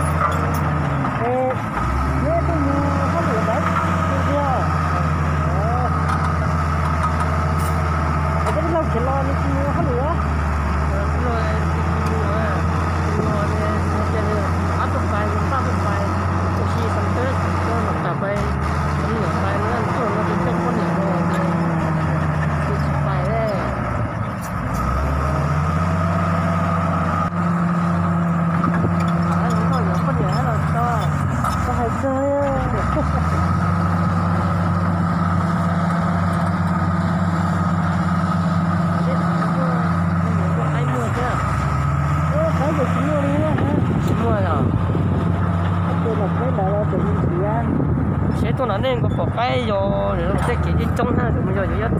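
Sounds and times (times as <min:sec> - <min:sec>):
bulldozer diesel engine under load: 0:00.0 - 0:51.9.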